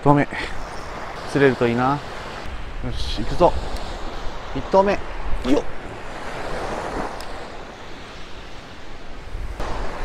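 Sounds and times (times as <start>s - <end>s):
surf washing onto beach: 0.0s - 10.0s
wind rumble on microphone: 0.0s - 10.0s.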